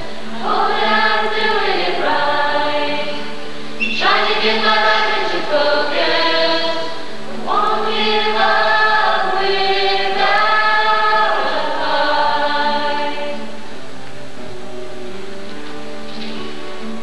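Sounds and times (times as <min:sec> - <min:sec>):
choir singing held chords: 0:00.0 - 0:14.5.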